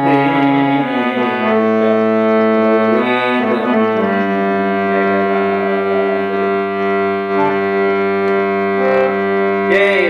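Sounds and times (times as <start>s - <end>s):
harmonium drone: 0.0s - 10.0s.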